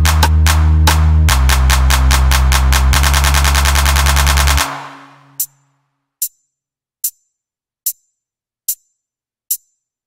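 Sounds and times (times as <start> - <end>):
electronic dance music: 0.0 - 5.5.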